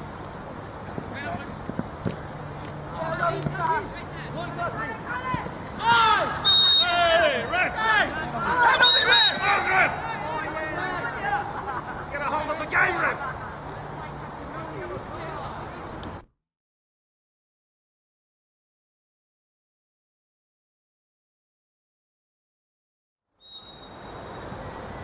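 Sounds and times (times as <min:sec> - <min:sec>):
crowd shouting excitedly: 0:03.0 - 0:13.3
short high whistle: 0:06.4 - 0:07.0, 0:08.8 - 0:09.4, 0:23.4 - 0:24.2.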